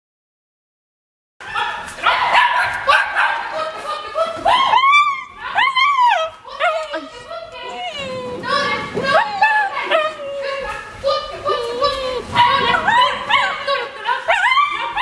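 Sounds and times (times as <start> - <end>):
dog barking and yelping: 1.5 - 3.6, 12.3 - 15.0
person's voice: 6.2 - 15.0.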